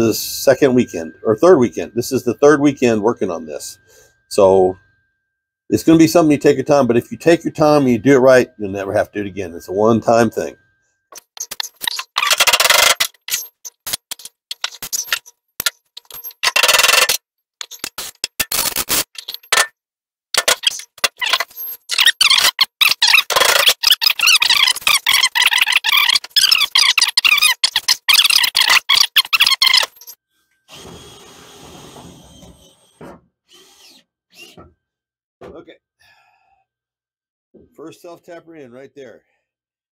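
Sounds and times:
cordless drill whining into metal: 30.6s - 34.7s.

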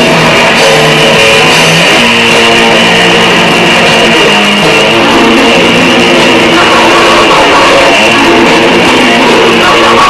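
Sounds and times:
bass guitar: 0.0s - 10.0s
distorted electric guitar riff: 0.0s - 10.0s.

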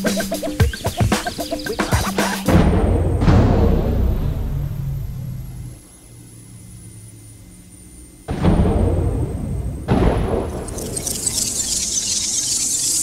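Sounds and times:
faint high whine: 0.5s - 13.0s
deep low cinematic hits: 2.5s - 5.8s, 8.3s - 11.4s
low hum: 2.5s - 13.0s.

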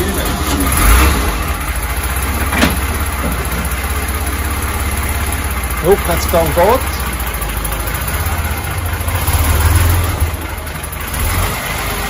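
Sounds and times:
car engine starting and idling: 0.0s - 12.0s.

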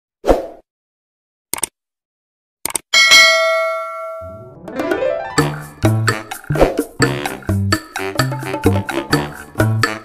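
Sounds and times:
quick clicks: 1.5s - 1.8s, 2.6s - 2.9s
notification bell ding: 3.0s - 4.4s.

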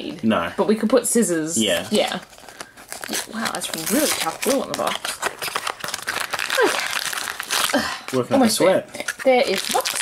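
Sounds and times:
cardboard box being torn open: 1.8s - 8.5s.

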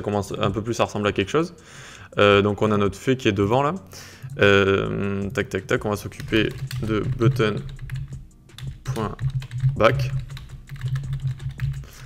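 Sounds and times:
keyboard typing: 4.3s - 12.0s.

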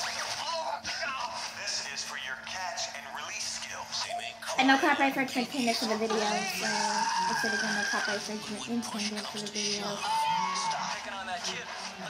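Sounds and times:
faint hum: 0.0s - 12.0s
music with voices from small speaker: 0.0s - 12.0s.

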